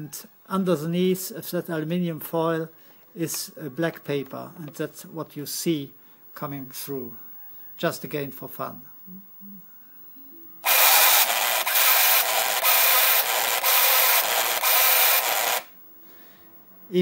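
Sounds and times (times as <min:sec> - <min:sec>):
printer buzzing: 0:10.6 - 0:15.7.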